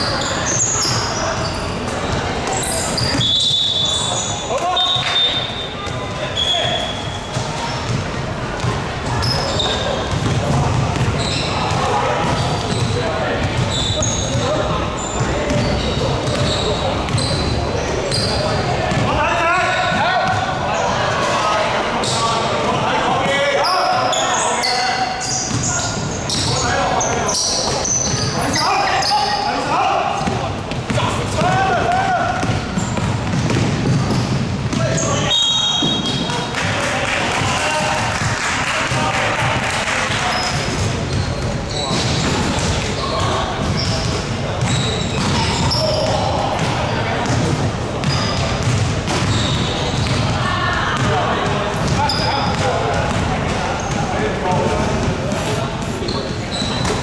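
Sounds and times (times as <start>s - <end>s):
sneakers squeaking on floor: 0.0s - 36.5s, 39.0s - 57.0s
basketball bouncing on hardwood: 32.4s - 34.8s.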